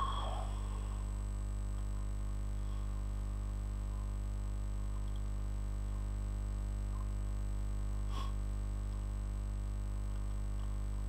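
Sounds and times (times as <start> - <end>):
faint high whine: 0.0 - 8.4
low electrical mains hum: 0.0 - 11.0.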